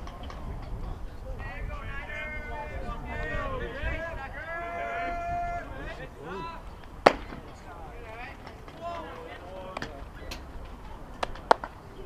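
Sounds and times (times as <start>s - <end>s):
baseball smack: 6.8s - 7.6s, 11.2s - 11.7s.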